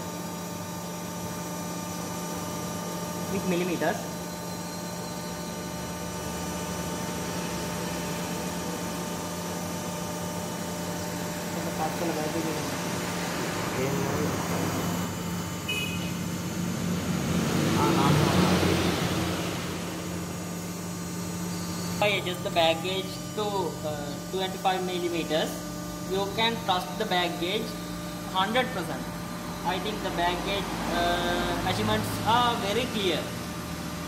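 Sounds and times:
hydraulic pump motor humming: 0.0 - 34.0.

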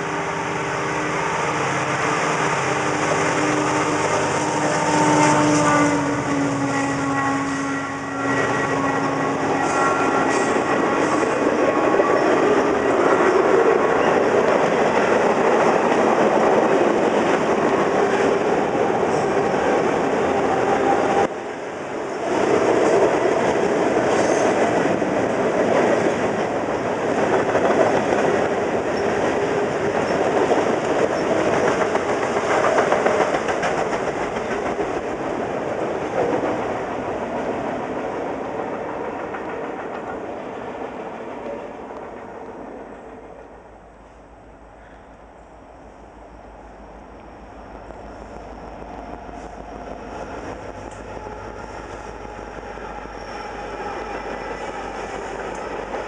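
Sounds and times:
freight train wheels on rails: 0.0 - 45.4, 46.2 - 56.0.

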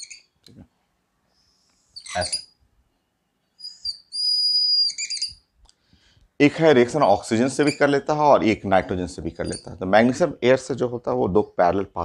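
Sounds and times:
marker squeaking on whiteboard: 0.0 - 0.4, 1.8 - 2.6, 3.5 - 5.6, 7.4 - 10.3.

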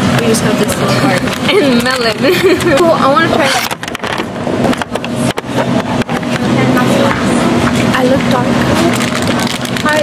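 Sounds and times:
plastic shopping cart rattling: 8.8 - 10.0.

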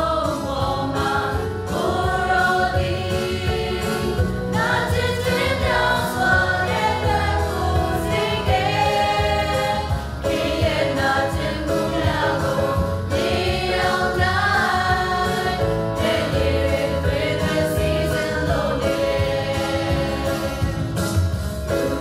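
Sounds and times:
group singing worship song: 0.0 - 22.0
instrumental accompaniment: 0.0 - 22.0.

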